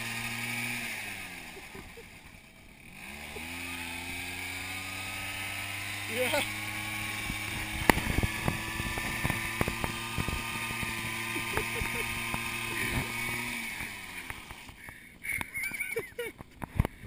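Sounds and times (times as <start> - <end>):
tyre spinning on asphalt: 0.0 - 14.9
scooter engine revving high: 0.0 - 17.0.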